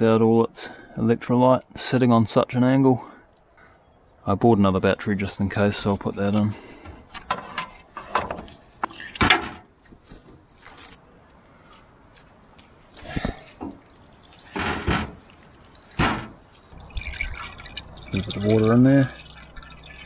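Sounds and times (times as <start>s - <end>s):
knocks of metal being handled: 16.0s - 16.4s.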